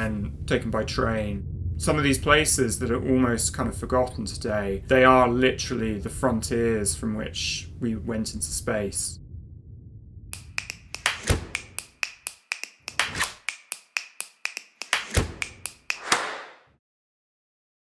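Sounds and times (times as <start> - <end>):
sharp clicks or taps: 10.4 - 16.6.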